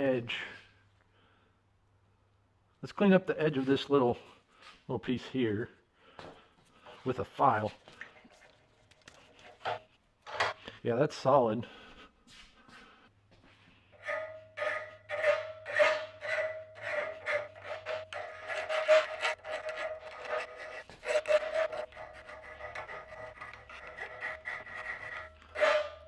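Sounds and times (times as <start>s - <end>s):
file rasping on metal: 14.0s - 26.0s.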